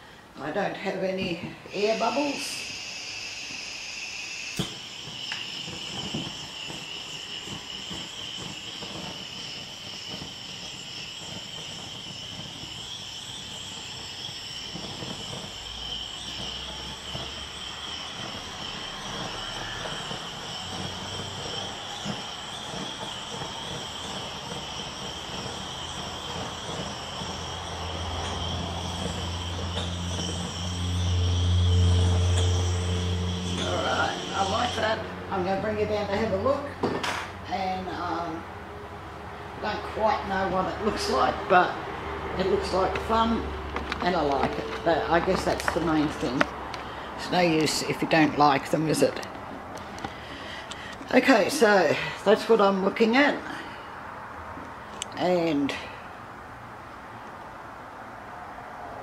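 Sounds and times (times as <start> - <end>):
blowtorch flame hissing: 0.0 - 56.4
low flame rumble: 1.0 - 59.0.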